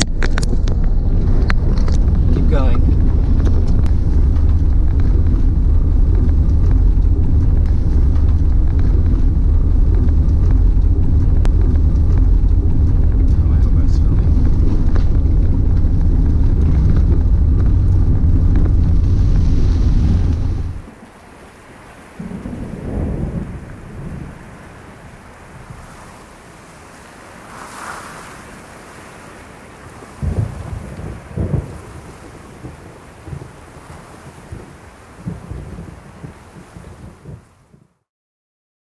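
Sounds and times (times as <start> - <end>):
rain hiss: 0.0 - 37.8
rolling thunder: 0.0 - 37.8
wind noise on microphone: 0.0 - 38.0.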